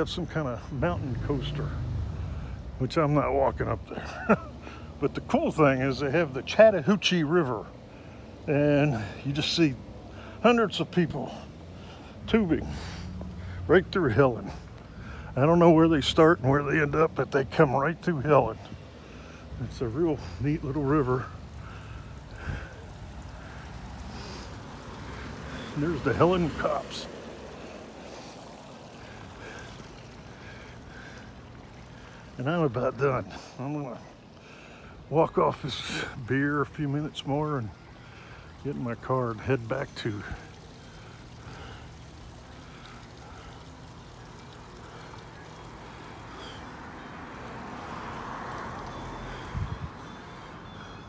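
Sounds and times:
passing car: 0.0 - 17.6, 18.2 - 35.2, 36.8 - 51.0
outdoor background rush: 0.0 - 51.0
faint distant voices: 19.8 - 47.3.

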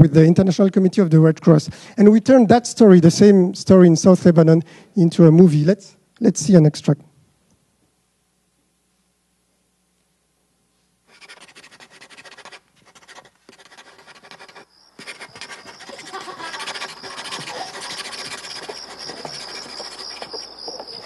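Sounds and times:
insects chirring: 13.9 - 21.0.

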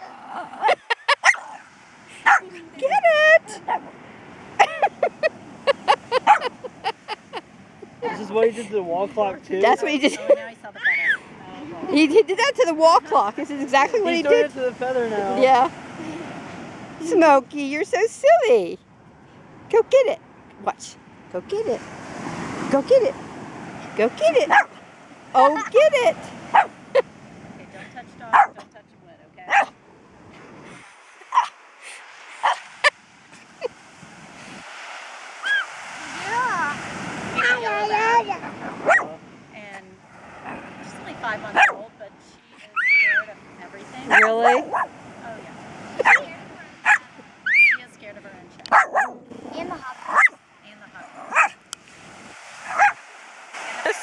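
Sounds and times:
small dog barking: 0.0 - 2.6, 6.2 - 6.6, 24.4 - 24.8, 26.5 - 26.8, 28.3 - 28.7, 29.5 - 29.7, 31.3 - 31.6, 32.4 - 32.7, 35.4 - 35.7, 38.5 - 39.2, 41.5 - 41.8, 44.0 - 45.0, 46.0 - 47.8, 48.7 - 49.2, 50.0 - 50.4, 51.2 - 51.6, 52.6 - 53.0
surf: 0.0 - 54.0
puppy yapping: 1.2 - 2.5, 6.2 - 6.5, 24.5 - 24.8, 35.4 - 35.7, 38.8 - 39.1, 44.1 - 44.9, 46.8 - 47.8, 48.7 - 49.2, 50.0 - 50.4, 51.3 - 51.6, 52.6 - 53.0
puppy whining: 47.5 - 47.8.

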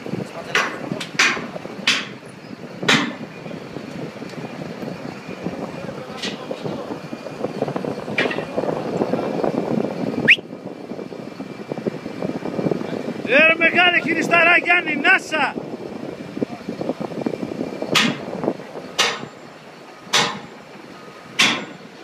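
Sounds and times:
heavy machinery engine running: 0.0 - 22.0
sharp knocks: 0.5 - 2.2, 2.9 - 3.2, 17.9 - 18.3, 19.0 - 19.4, 20.1 - 20.5, 21.4 - 21.8.

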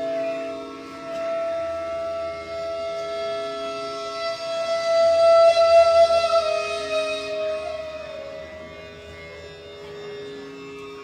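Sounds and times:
bamboo flute sustained note: 0.0 - 11.0.

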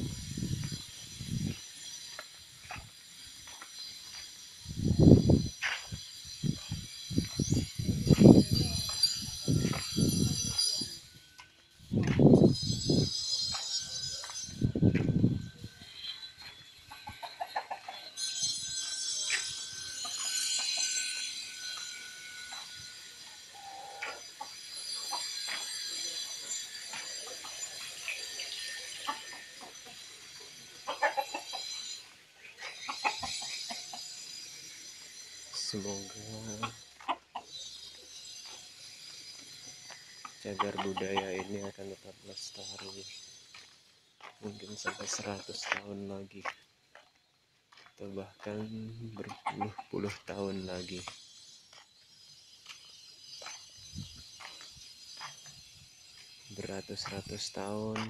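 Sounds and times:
wind buffeting microphone: 0.0 - 1.6, 4.6 - 10.9, 11.8 - 13.2, 14.5 - 15.8
high shrill buzz: 0.0 - 46.7, 50.0 - 58.0
chickens clucking: 16.9 - 18.1, 28.9 - 30.1, 30.8 - 34.1, 36.6 - 37.6, 40.5 - 41.7, 44.5 - 45.5, 49.1 - 50.1.

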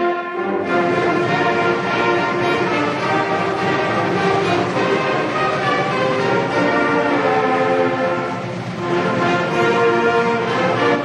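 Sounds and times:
band playing brass chords: 0.0 - 11.0.

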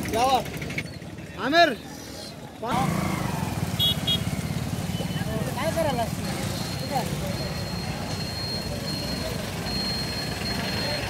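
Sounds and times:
motorcycle engine running: 2.7 - 8.2.

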